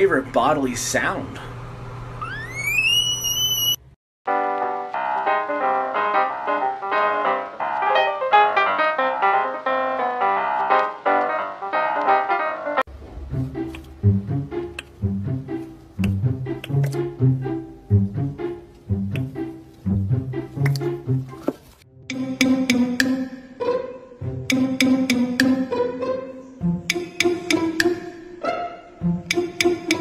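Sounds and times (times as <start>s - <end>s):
rising whistle-like tone: 2.2s - 3.9s
brisk tune of quick notes: 12.8s - 21.4s
tune with plucked bass line: 12.9s - 21.4s, 22.1s - 30.0s.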